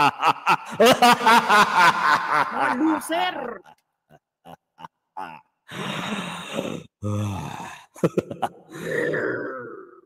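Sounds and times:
woman laughing: 0.0 - 5.4.

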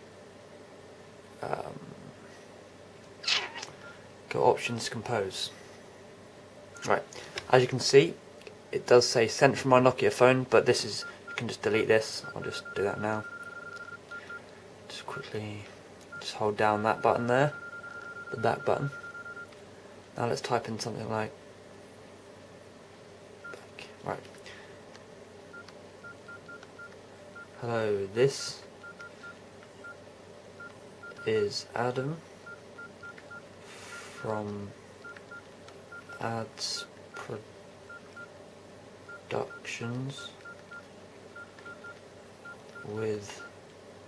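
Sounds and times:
keypad beeps: 12.2 - 14.4, 17.0 - 19.5, 30.6 - 31.3, 32.5 - 34.3, 40.4 - 40.8, 41.4 - 42.9.

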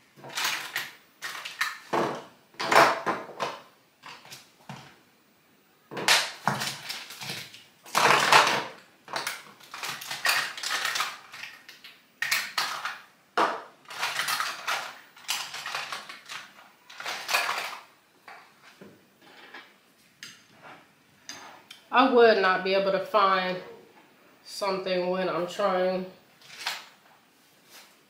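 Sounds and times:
makeup containers clattering: 12.2 - 17.9.

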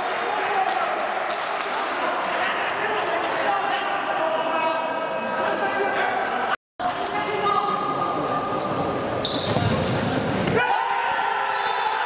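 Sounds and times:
shoe squeaks: 6.8 - 10.6.

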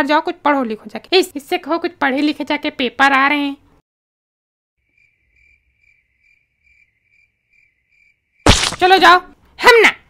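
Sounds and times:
cricket chirping: 4.8 - 8.5.

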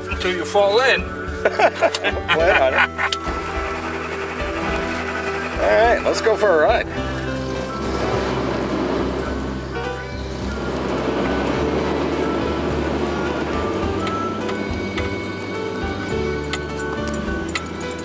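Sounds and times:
background music: 0.0 - 18.0
car engine humming: 0.0 - 18.0.

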